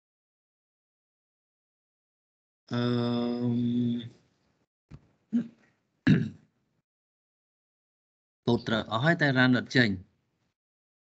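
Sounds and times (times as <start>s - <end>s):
person murmuring: 2.7s - 4.1s
throat clearing: 5.3s - 6.4s.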